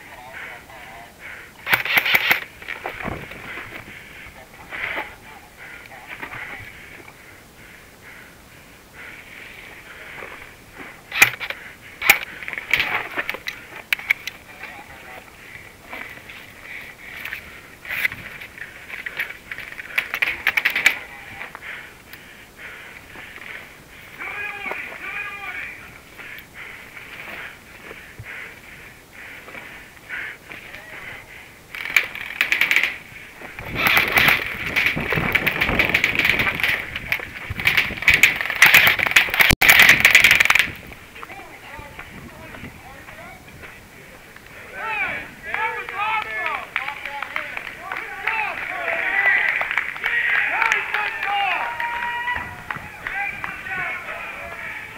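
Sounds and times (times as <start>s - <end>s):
airsoft guns firing: 1.6s - 2.5s, 11.1s - 14.3s.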